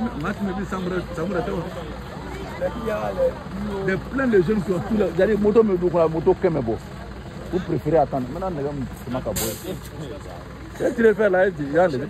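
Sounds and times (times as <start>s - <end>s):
people talking: 0.0s - 12.0s
brief hiss: 9.4s - 9.8s.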